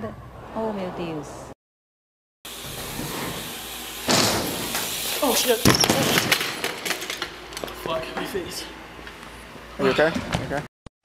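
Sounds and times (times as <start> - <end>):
bike thud on ramp: 4.1 - 4.9.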